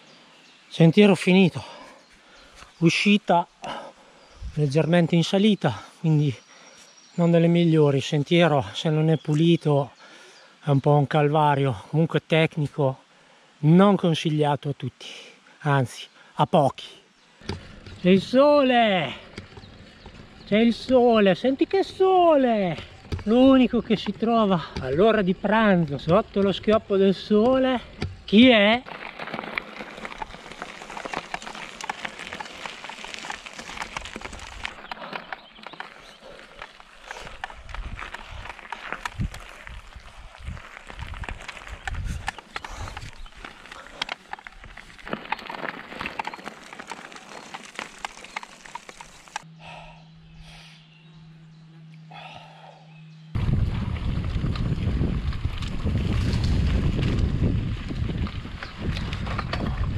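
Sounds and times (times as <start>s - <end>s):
tyres crunching on gravel: 17.4s - 49.5s, 53.3s - 59.9s
bike rattling clicks: 28.9s - 49.5s
wind rumble on microphone: 37.2s - 43.5s, 53.3s - 59.9s.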